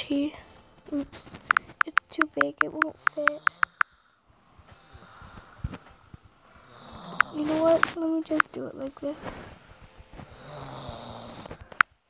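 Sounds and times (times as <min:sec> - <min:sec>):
sharp click: 0:01.3 - 0:03.9
person snoring: 0:04.8 - 0:08.1, 0:10.2 - 0:11.8.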